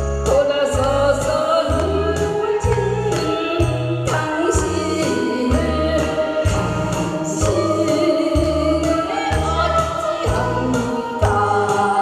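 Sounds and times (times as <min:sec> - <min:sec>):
instrumental accompaniment: 0:00.0 - 0:12.0
woman singing through a microphone: 0:00.2 - 0:12.0.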